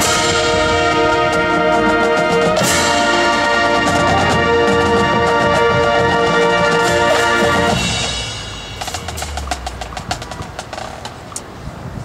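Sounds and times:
brass band chord: 0.0s - 10.2s
mallet notes: 0.0s - 10.7s
percussion clicks and taps: 8.8s - 11.5s.

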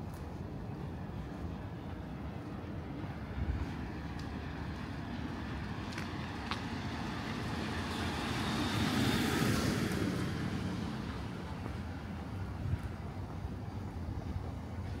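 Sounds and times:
car passing by: 3.2s - 13.0s.

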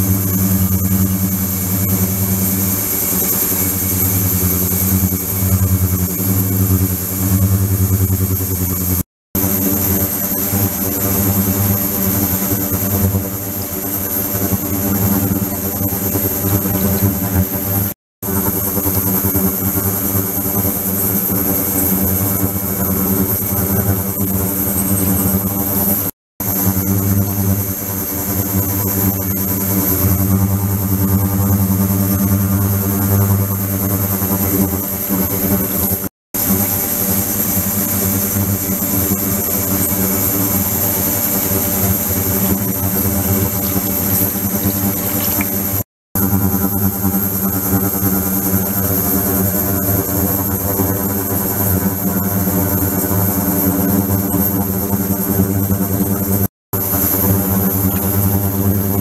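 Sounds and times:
ultrasonic cleaner buzzing hum: 0.0s - 59.0s.

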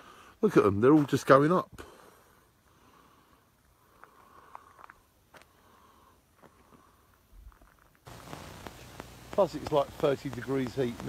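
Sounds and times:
faint outdoor hiss: 0.0s - 11.0s
steady rush of noise: 8.1s - 11.0s.

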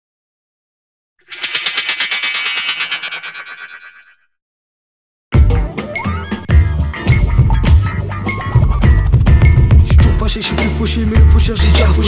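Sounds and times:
rapid stuttering pulse effect: 1.2s - 4.2s.

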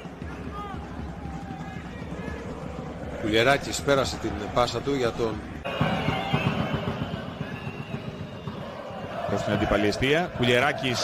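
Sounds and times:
stadium crowd hum: 0.0s - 11.0s.

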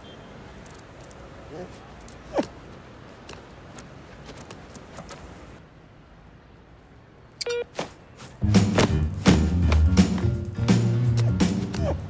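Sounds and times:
crossing signal beep: 7.4s - 7.7s.

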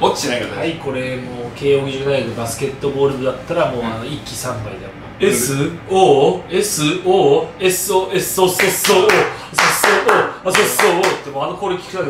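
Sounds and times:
man chanting: 5.2s - 6.2s
hands clapping: 8.6s - 11.3s.

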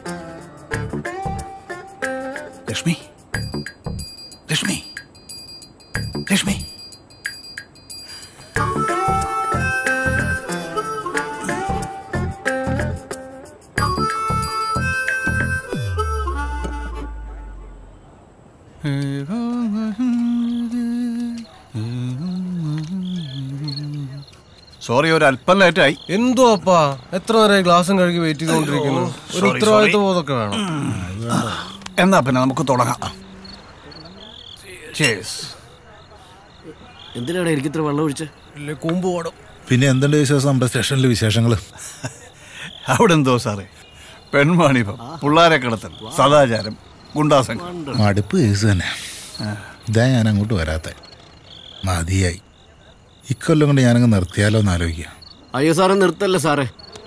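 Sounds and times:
crickets chirping: 0.0s - 57.0s
man speaking: 4.5s - 4.9s, 6.2s - 6.7s, 24.9s - 33.2s, 33.9s - 35.7s
man humming: 15.7s - 17.8s, 18.8s - 24.2s, 30.5s - 33.6s.

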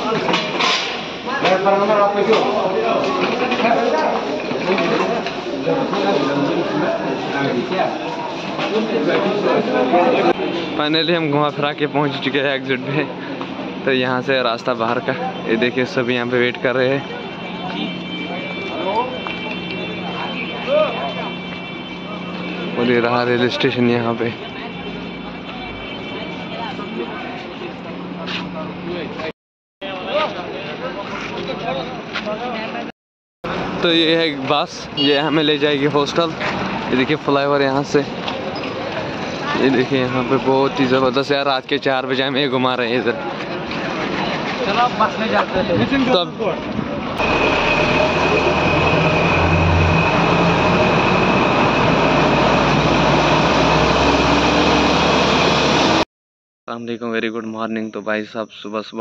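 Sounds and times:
faint voices: 1.2s - 32.9s
bus engine rumble: 42.9s - 56.0s
low mechanical drone: 47.1s - 56.0s
high whine: 47.2s - 56.0s.

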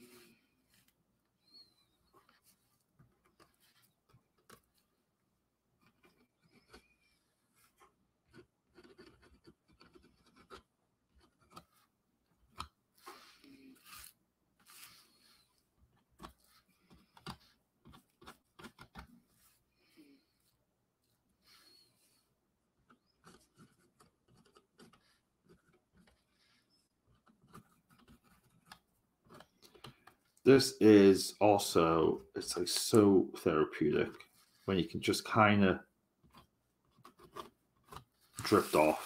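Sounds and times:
marker scratching and tapping: 7.7s - 15.0s, 15.9s - 19.6s, 22.8s - 30.4s, 36.2s - 39.0s.

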